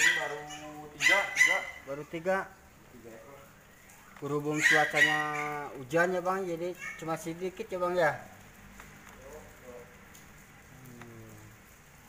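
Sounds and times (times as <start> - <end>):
steady rain hiss: 0.0 - 12.0.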